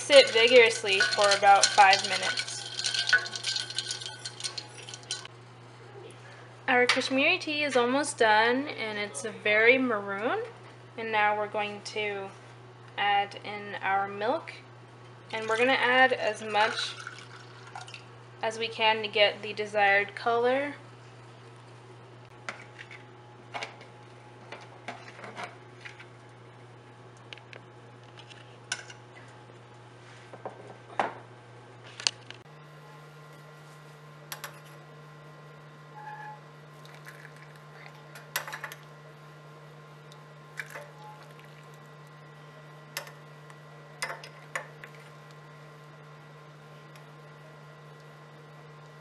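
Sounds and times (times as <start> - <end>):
spoon stirring ice in metal pan: 0.0 - 5.3
steady low hum: 0.0 - 49.0.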